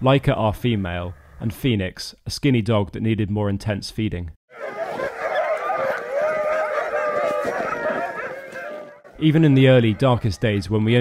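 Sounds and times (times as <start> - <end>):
dogs howling and yelping: 4.5 - 10.7.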